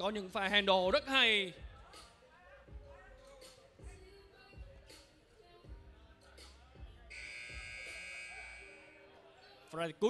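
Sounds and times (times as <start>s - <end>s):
game buzzer tone: 7.1s - 9.0s.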